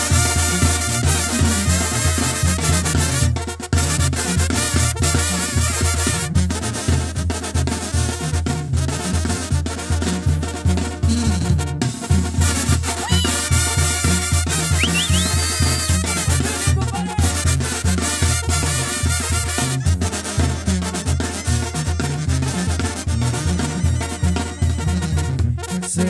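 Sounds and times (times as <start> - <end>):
brass band playing: 0.0 - 26.0
tuba bass line: 0.0 - 26.0
percussion: 12.4 - 22.2.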